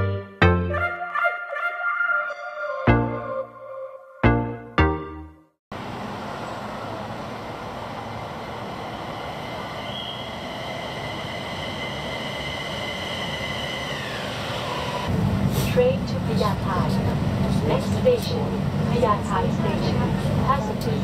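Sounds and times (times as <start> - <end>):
train rumble: 5.8 - 21.0.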